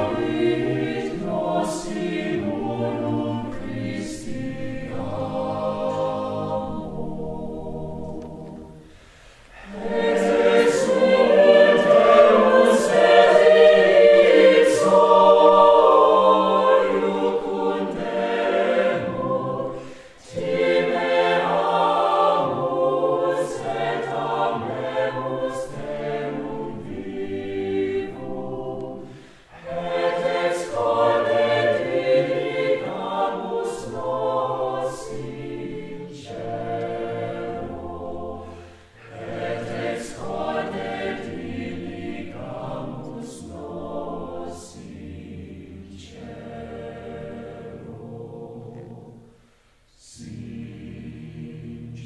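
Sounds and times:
chamber choir singing: 0:00.0 - 0:52.0.

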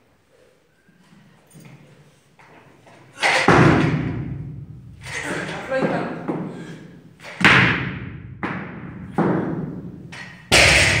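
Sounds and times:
barbell dropped on platform: 0:10.5 - 0:11.0.

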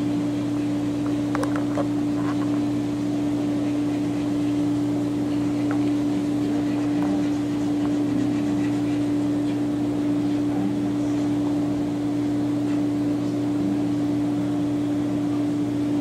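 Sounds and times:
pump motor hum: 0:00.0 - 0:16.0.

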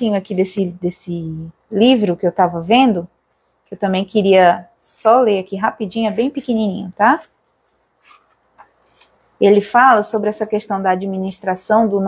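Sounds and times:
person speaking: 0:00.0 - 0:03.1, 0:03.7 - 0:12.0
book pages rustling: 0:07.6 - 0:09.3.

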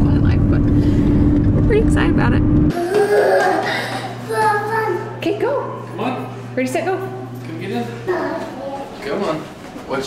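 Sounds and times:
steady low hum: 0:00.0 - 0:09.9
child vocalizing sing-song: 0:02.7 - 0:05.2, 0:08.1 - 0:09.0.

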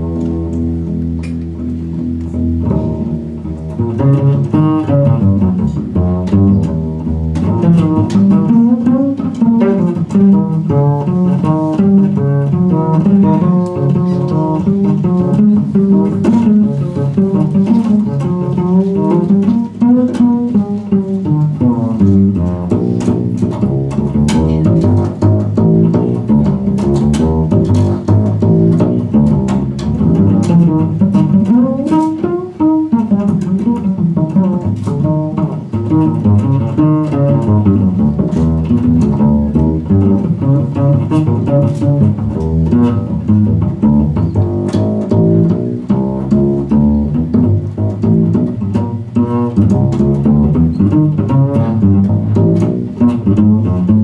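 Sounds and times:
guitar: 0:00.0 - 0:54.0
plucked double bass: 0:00.0 - 0:54.0.

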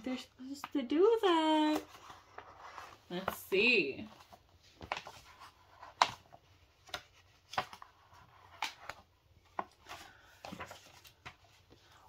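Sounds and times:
paper pages turning: 0:01.4 - 0:03.4, 0:04.0 - 0:11.9.

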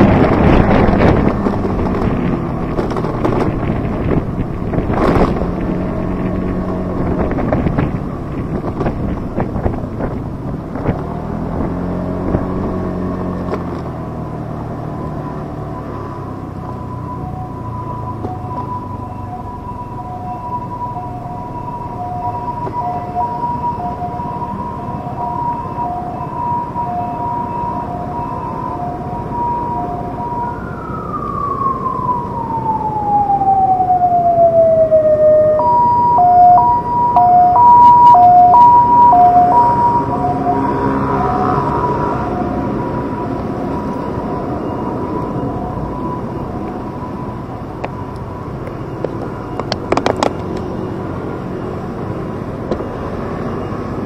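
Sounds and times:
emergency vehicle siren: 0:00.0 - 0:54.0
street traffic noise: 0:00.0 - 0:54.0.

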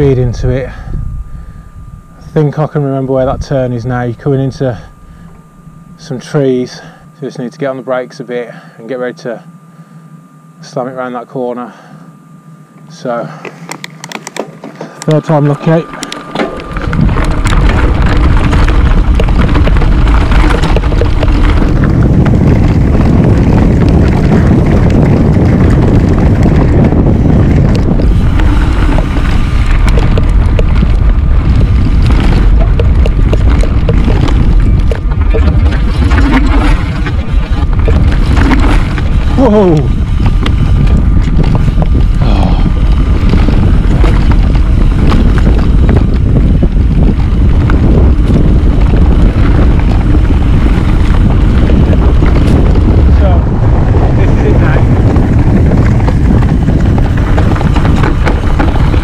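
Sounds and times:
wind buffeting microphone: 0:00.0 - 0:09.3, 0:13.1 - 0:59.0
mountain bike tyres rumbling: 0:00.0 - 0:59.0.

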